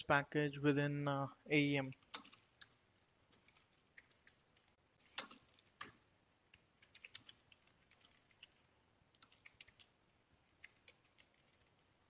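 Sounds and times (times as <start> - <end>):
faint keyboard typing: 1.8 - 12.0.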